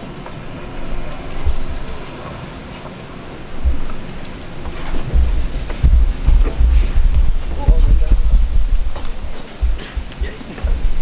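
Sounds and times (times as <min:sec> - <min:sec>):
low thumps: 0:00.8 - 0:02.1, 0:03.5 - 0:11.0.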